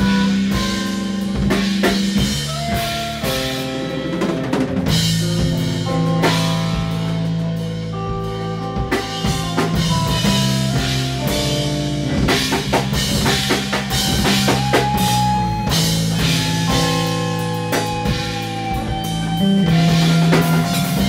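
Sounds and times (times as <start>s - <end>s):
drum kit hits: 0.0s - 21.0s
electric guitars and bass: 0.0s - 21.0s.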